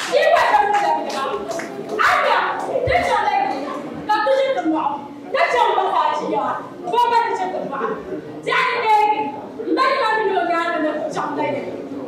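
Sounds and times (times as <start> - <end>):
hand clapping: 0.0 - 3.8
woman speaking: 0.0 - 11.6.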